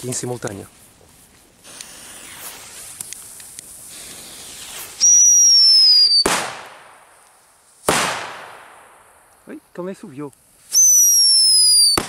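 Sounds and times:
firecracker hiss: 0.0s - 12.0s
firecracker bang: 3.9s - 7.2s, 7.8s - 9.3s, 11.8s - 12.0s
firecracker whistle falling in pitch: 4.6s - 6.5s, 10.7s - 12.0s.

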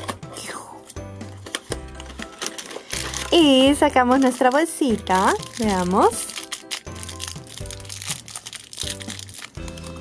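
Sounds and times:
background music: 0.0s - 10.0s
foil wrapper crinkling: 1.4s - 10.0s.

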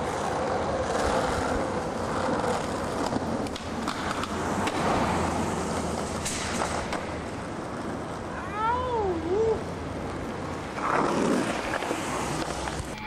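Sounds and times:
skateboard wheels rolling on pavement: 0.0s - 13.0s.

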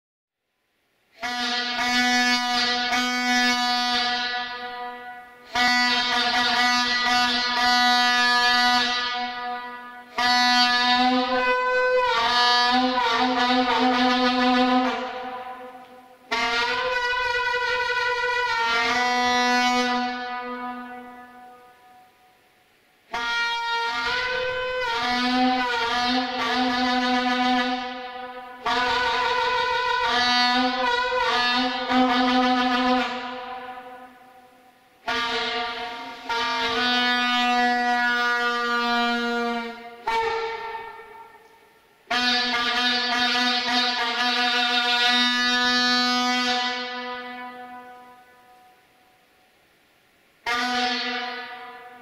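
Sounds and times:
vuvuzela blasts in a tunnel: 1.1s - 22.5s, 23.1s - 48.9s, 50.4s - 52.0s.

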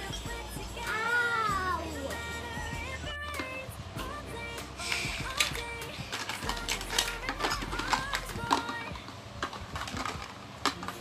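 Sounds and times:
young child's voice: 0.9s - 2.1s
plastic toy pieces clattering: 4.9s - 11.0s.

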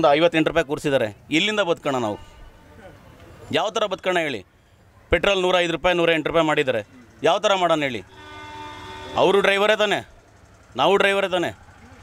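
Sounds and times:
vehicle horn held note: 8.1s - 9.5s.

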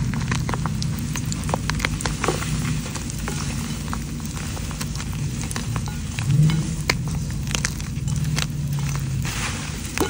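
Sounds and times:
hands crunching wet chalk: 0.0s - 10.0s.

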